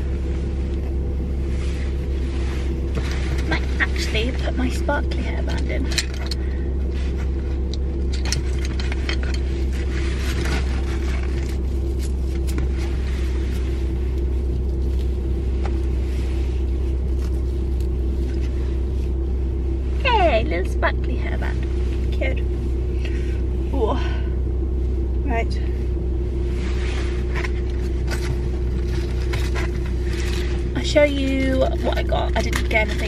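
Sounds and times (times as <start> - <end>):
car engine idling: 0.0 - 33.0.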